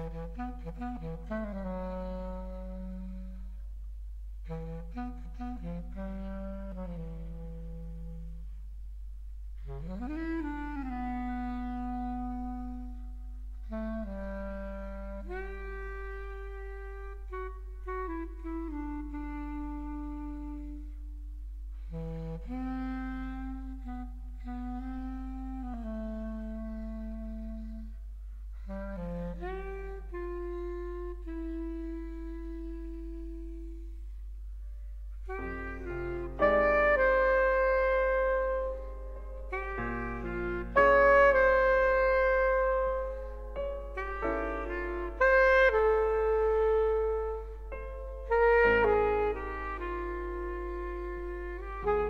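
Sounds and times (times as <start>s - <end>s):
woodwind holding long note: 0.0s - 8.8s, 9.6s - 52.0s.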